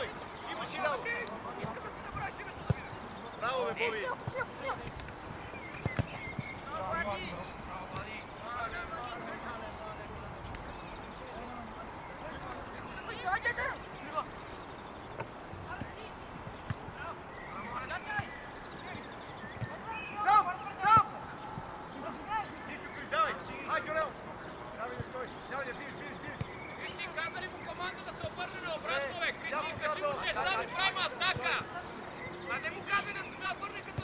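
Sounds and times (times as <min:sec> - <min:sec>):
players and coaches shouting: 0:00.0 - 0:05.3, 0:06.6 - 0:10.3, 0:11.2 - 0:14.4, 0:16.9 - 0:34.0
outdoor background noise: 0:00.0 - 0:34.0.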